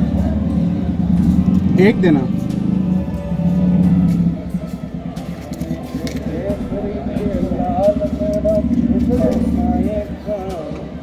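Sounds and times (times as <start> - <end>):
steady low hum: 0.0 - 10.7
background voices: 0.0 - 11.0.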